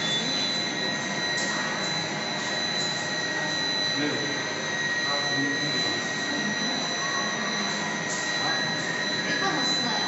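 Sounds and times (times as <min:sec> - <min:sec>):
high-pitched machine whine: 0:00.0 - 0:10.0
low machine hum: 0:00.0 - 0:10.0.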